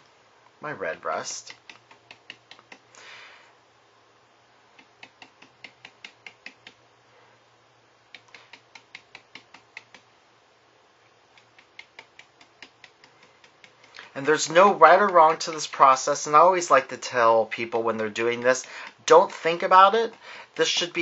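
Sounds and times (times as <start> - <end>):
brush dabbing taps: 4.8 - 6.8, 8.2 - 10.1, 11.3 - 16.2, 17.6 - 21.0.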